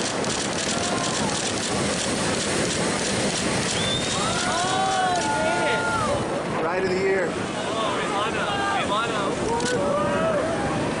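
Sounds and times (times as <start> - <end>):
ocean waves breaking: 0.0 - 11.0.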